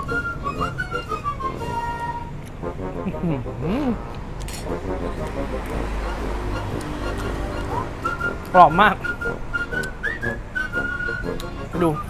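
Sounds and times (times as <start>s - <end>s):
whistled melody: 0.0s - 2.5s, 5.6s - 12.0s
person speaking: 8.5s - 9.0s.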